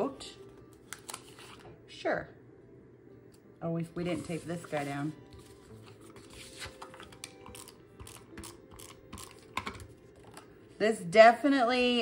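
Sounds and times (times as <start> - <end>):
paper sheets rustling and tapping: 4.6 - 8.1.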